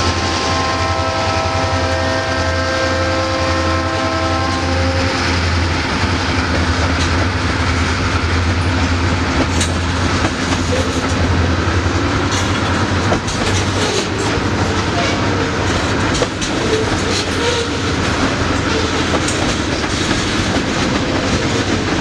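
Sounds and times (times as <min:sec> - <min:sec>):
freight train rumbling past: 0:00.0 - 0:22.0
wheel clatter over rail joints: 0:05.2 - 0:22.0.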